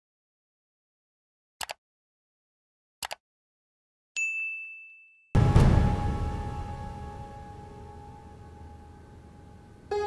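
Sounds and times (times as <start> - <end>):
notification bell ding: 4.2 - 8.2
background music with low hit: 5.4 - 9.4.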